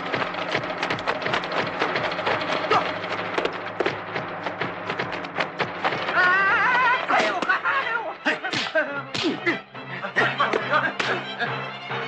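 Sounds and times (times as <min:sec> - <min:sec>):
dense clatter of sharp strikes: 0:00.0 - 0:06.2.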